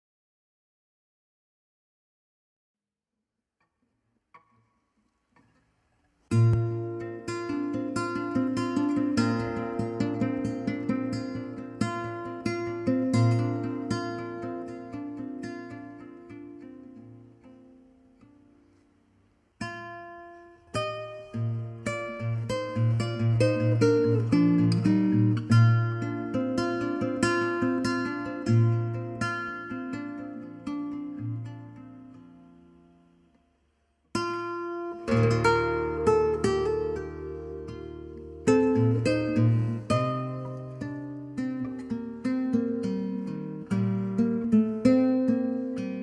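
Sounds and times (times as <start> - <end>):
fingerstyle classical guitar: 4.3 - 46.0.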